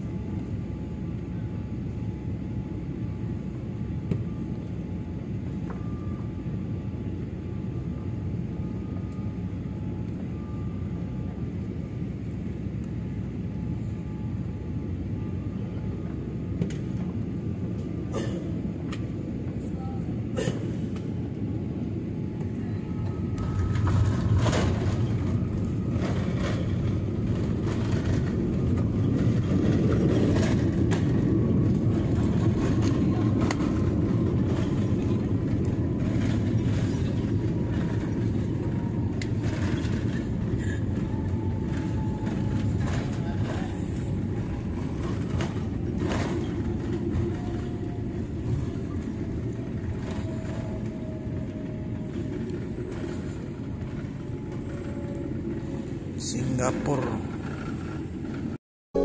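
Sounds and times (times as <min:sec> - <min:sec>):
airliner engine and airflow rumble: 0:00.0 - 0:59.0.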